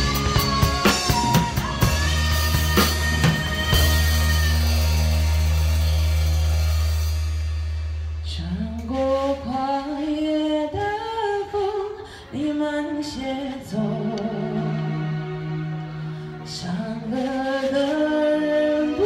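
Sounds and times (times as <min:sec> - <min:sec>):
person singing: 0:00.0 - 0:07.0
drum kit with crash cymbals: 0:00.0 - 0:09.2.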